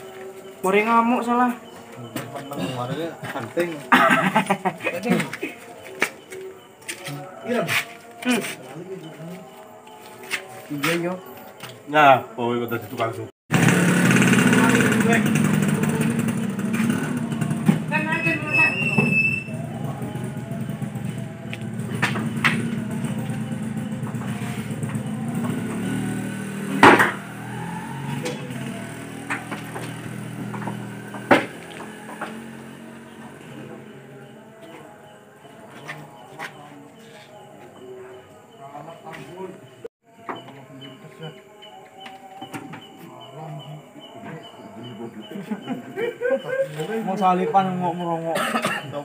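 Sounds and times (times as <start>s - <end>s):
men talking: 0.6s - 13.4s, 14.5s - 16.6s, 38.6s - 39.7s, 43.3s - 49.0s
vehicle engine rumble: 13.5s - 34.5s
faint high chirp: 18.1s - 20.4s.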